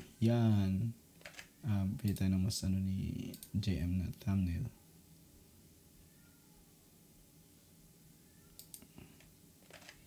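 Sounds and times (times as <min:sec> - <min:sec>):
faint computer mouse clicks: 0:08.5 - 0:08.9.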